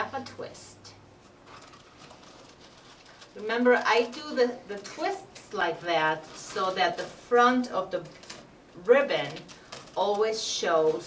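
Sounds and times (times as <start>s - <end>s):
ribbon rustling: 1.2s - 11.0s.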